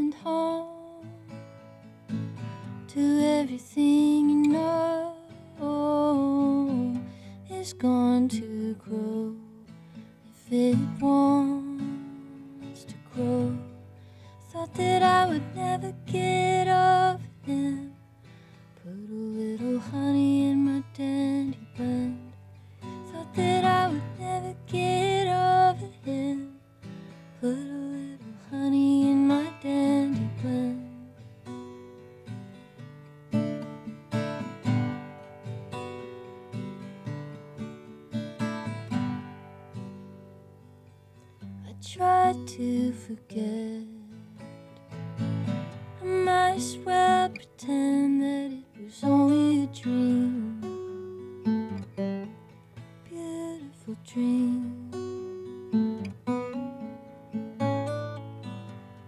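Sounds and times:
woman singing: 0:00.0 - 0:01.4, 0:02.8 - 0:18.0, 0:18.8 - 0:26.7, 0:27.4 - 0:31.2, 0:41.6 - 0:44.5, 0:45.8 - 0:51.5, 0:53.0 - 0:56.1
acoustic guitar: 0:00.0 - 0:59.0.

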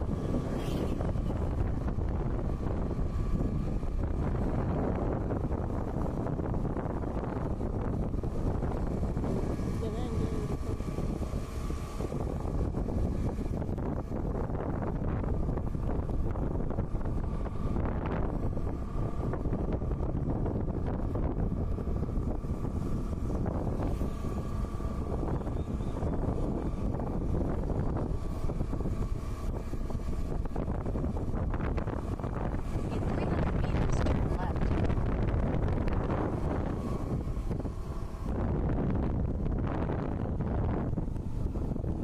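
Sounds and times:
motorcycle engine running: 0:00.0 - 0:42.0
wind rushing over microphone: 0:00.0 - 0:42.0.

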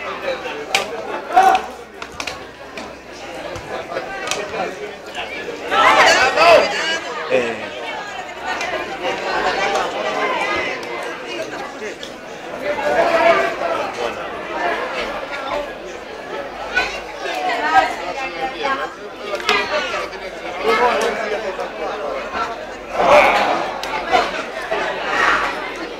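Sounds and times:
spectators chattering: 0:00.0 - 0:25.9.

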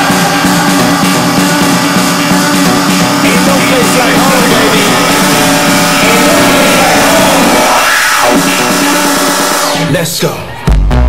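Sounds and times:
kick drum and heavy bass: 0:00.0 - 0:09.9, 0:10.6 - 0:11.0
sweeping effect: 0:00.0 - 0:10.0
electronic dance music: 0:00.0 - 0:11.0.

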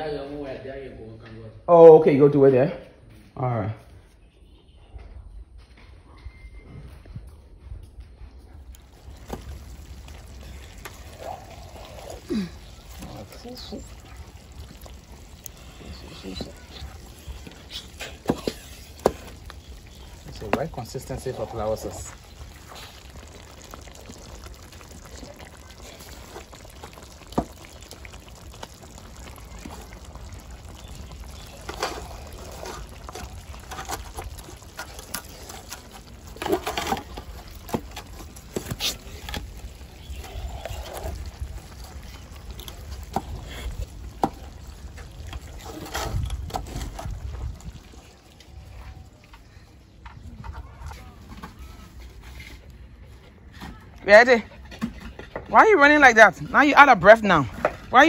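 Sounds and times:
wet squelches of dough: 0:08.6 - 0:55.2.

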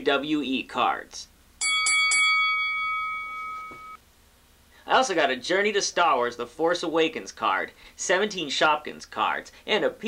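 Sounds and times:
bell-like chime ringing: 0:01.6 - 0:04.0.

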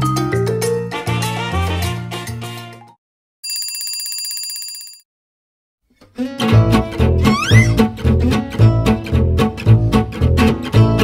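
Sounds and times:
alarm bell ringing: 0:03.4 - 0:05.0.

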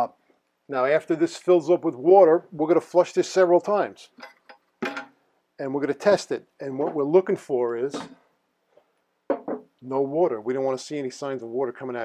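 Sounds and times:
man speaking: 0:00.0 - 0:04.1, 0:05.6 - 0:08.2, 0:09.8 - 0:12.0.

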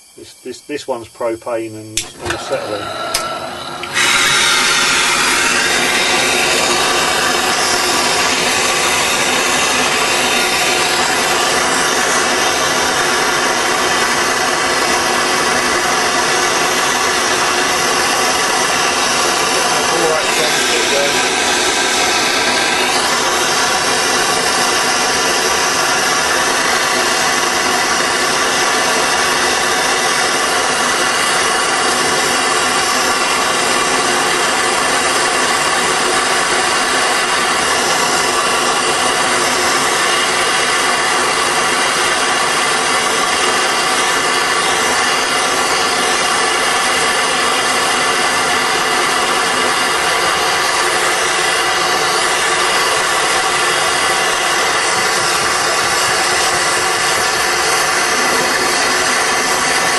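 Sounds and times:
propane torch hissing: 0:00.0 - 0:59.9.

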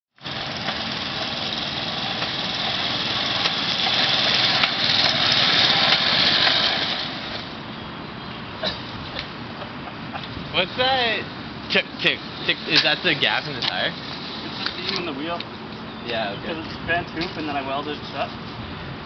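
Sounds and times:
sharp ticks from rolling wheel: 0:00.2 - 0:07.5
small engine running: 0:00.2 - 0:07.6.

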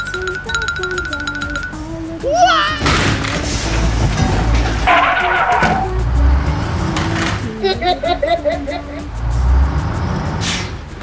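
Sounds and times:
light background music: 0:00.0 - 0:11.0
car tyre screech: 0:03.4 - 0:06.0, 0:10.1 - 0:11.0.

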